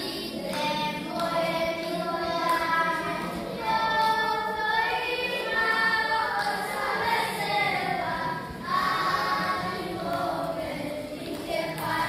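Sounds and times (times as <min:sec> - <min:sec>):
children singing unaccompanied: 0:00.0 - 0:12.0.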